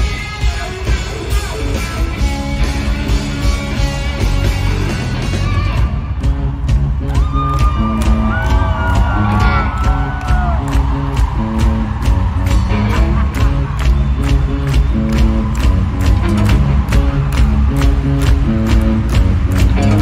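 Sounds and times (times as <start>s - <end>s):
live rock band: 0.0s - 20.0s
crowd whooping and cheering: 3.7s - 20.0s
drum beat: 6.2s - 20.0s.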